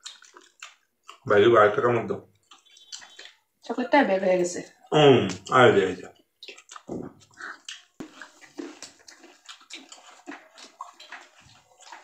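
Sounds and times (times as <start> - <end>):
rustles of people eating: 0.0 - 3.5, 4.6 - 12.0.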